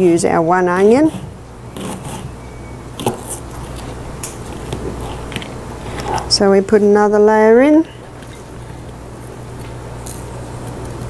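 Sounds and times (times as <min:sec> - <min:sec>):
knife cutting onion: 0:00.8 - 0:02.4, 0:03.0 - 0:03.9.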